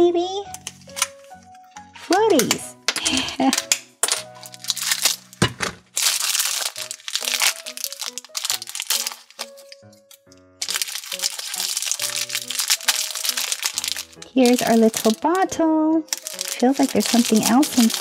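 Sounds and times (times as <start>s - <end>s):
background music: 0.0s - 18.0s
plastic wrapper tearing and crumpling: 0.6s - 1.4s, 2.0s - 15.4s, 16.1s - 18.0s.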